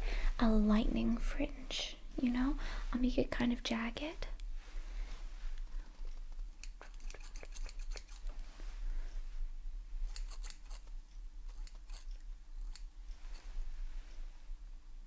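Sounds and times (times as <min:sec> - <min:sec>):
hair shears snipping: 0:06.6 - 0:08.3, 0:10.1 - 0:10.9, 0:11.5 - 0:13.4.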